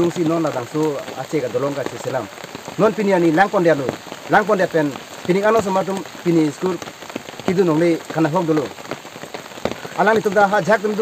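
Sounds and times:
man speaking: 0.0s - 6.8s, 7.5s - 8.7s, 9.9s - 11.0s
rain hissing: 0.0s - 11.0s.

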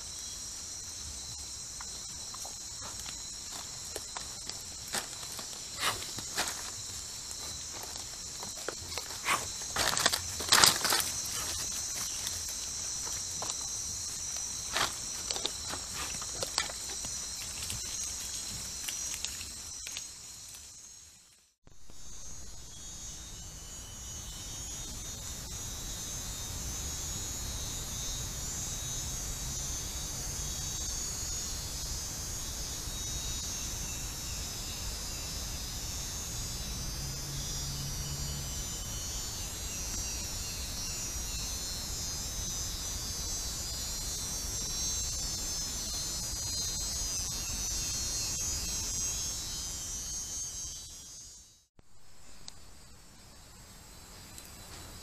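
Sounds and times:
insect chirping trills: 0.0s - 55.0s
insects buzzing high: 0.0s - 55.0s.

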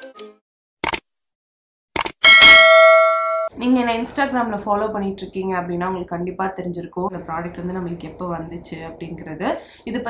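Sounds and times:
bright bell ding: 2.2s - 3.5s.

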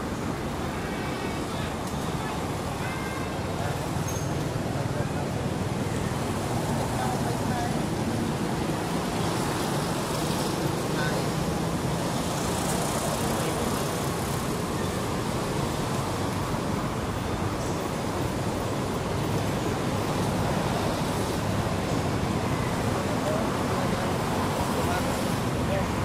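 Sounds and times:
road traffic roar: 0.0s - 26.0s.

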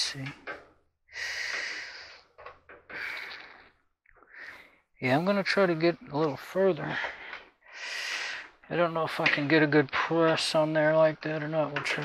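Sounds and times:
man breathing heavily: 1.1s - 5.0s, 6.8s - 8.7s.

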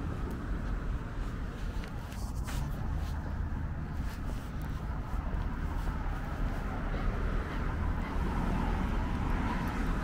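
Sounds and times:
car traffic rumble: 0.0s - 10.0s.

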